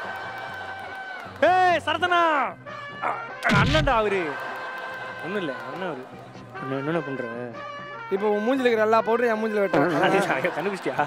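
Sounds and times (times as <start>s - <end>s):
thud: 3.4s - 4.0s.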